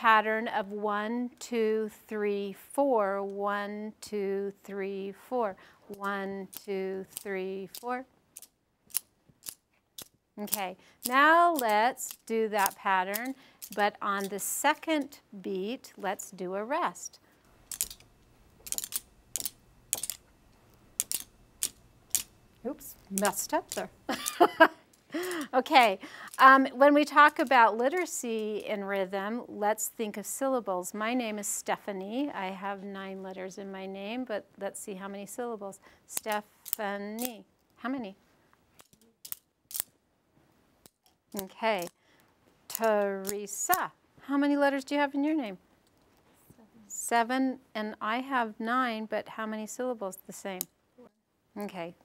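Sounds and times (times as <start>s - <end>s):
wooden rhythm sticks clacking: 5.9s - 14.4s.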